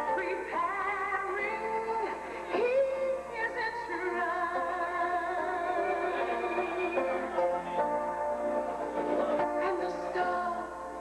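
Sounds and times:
woman singing gospel: 0.0 - 7.2, 9.6 - 10.9
sustained instrumental backing: 0.0 - 11.0.

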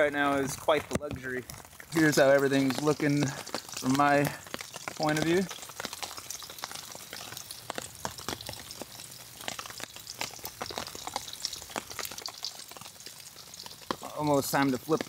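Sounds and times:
patty sizzling in a skillet: 0.0 - 15.0.

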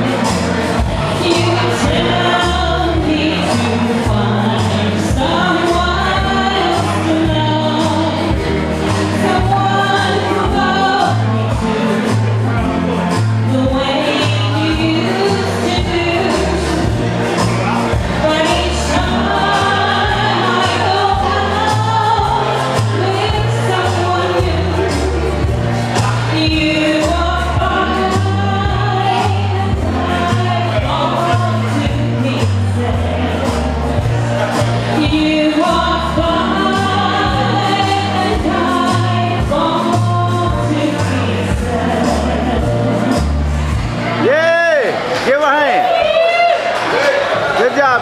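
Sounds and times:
woman singing into a microphone: 0.0 - 34.1, 34.8 - 43.5
backing track with bass line: 0.0 - 48.0.

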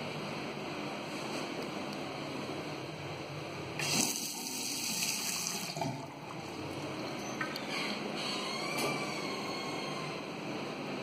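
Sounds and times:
tap water running into washbasin: 3.8 - 7.2.

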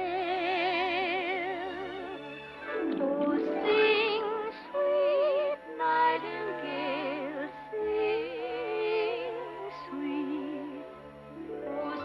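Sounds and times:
layered soprano singing: 0.0 - 12.0.

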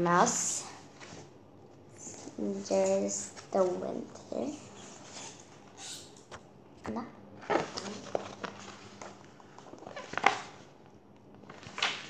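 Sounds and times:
soft paper rustles and taps: 6.3 - 12.0
book pages turning: 7.4 - 12.0.

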